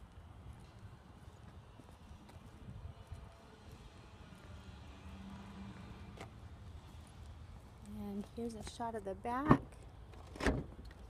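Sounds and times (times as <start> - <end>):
footsteps on pavement: 0.0 - 8.9.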